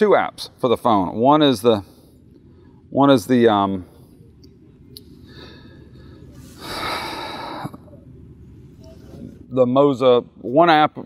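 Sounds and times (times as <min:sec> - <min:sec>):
man breathing close to microphone: 0:05.1 - 0:07.9.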